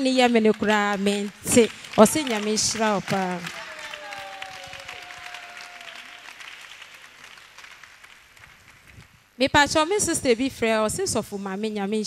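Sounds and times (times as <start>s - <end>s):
audience applause: 0.5s - 9.1s.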